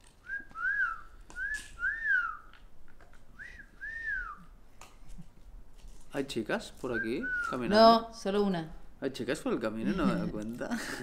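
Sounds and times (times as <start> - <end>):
person whistling short notes: 0.2 - 2.5, 3.4 - 4.5, 6.9 - 7.7.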